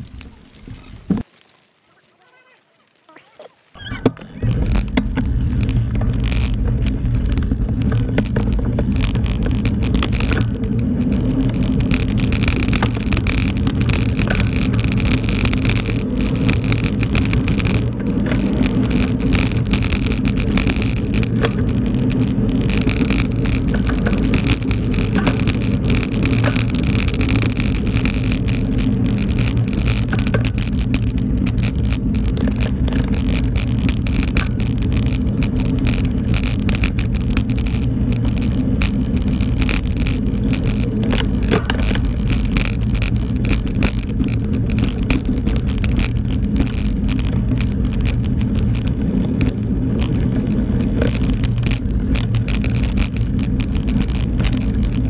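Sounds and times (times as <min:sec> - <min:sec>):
wind noise: 0:00.0 - 0:01.3, 0:03.7 - 0:55.0
bike riding rumble on dirt road: 0:00.0 - 0:55.0
small rattles and clicks: 0:00.0 - 0:55.0.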